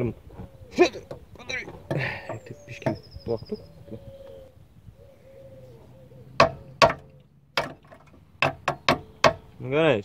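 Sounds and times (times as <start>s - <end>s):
hammer knocking on metal: 1.8s - 3.1s, 6.4s - 7.0s, 7.6s - 9.4s.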